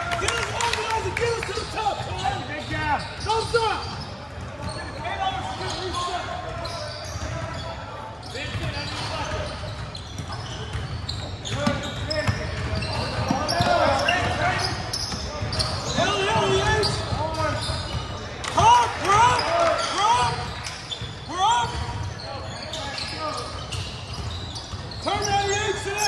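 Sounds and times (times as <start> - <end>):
sneakers squeaking: 1.2 - 26.0
basketball bouncing: 9.7 - 14.4.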